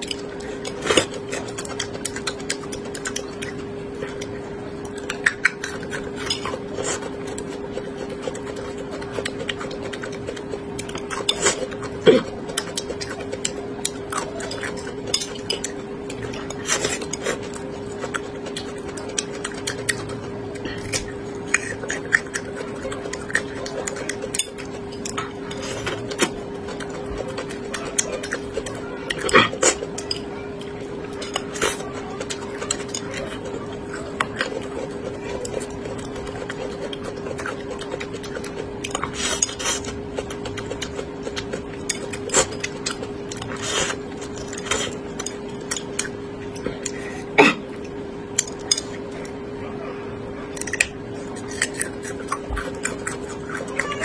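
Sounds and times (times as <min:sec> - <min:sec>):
close chewing: 0:00.0 - 0:49.5, 0:50.4 - 0:54.0.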